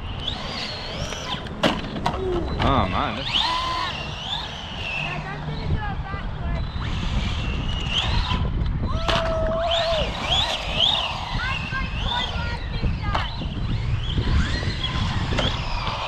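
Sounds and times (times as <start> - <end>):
electric motor whining: 0.0 - 16.0
wind on microphone: 0.0 - 16.0.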